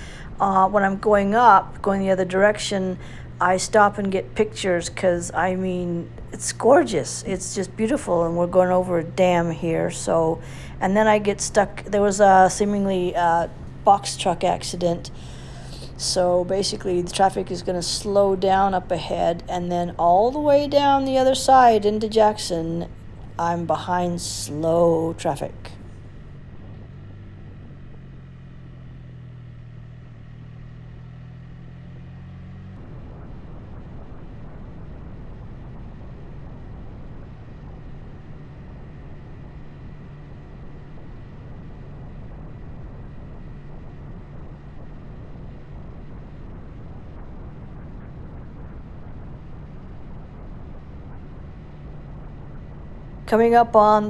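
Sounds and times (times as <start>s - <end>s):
motorcycle engine droning: 0.0s - 54.0s
wind and road noise: 0.0s - 54.0s.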